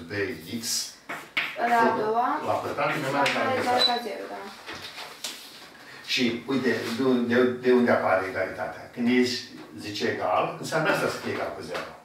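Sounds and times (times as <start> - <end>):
chalk taps: 1.1 - 1.6.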